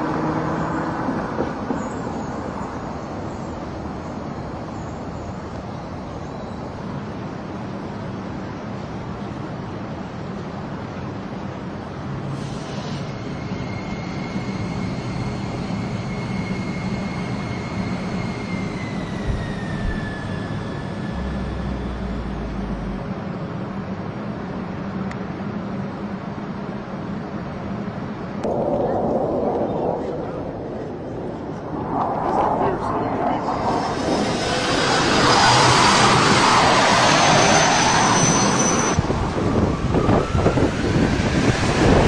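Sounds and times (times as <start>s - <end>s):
engine-like drone with high whine: 12.1s - 42.0s
surge of noise: 28.2s - 39.0s.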